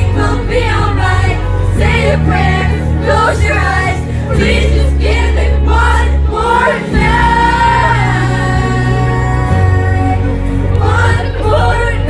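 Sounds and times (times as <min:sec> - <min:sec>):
backing vocal harmonies: 0:00.0 - 0:12.0
woman singing into microphone: 0:00.0 - 0:12.0.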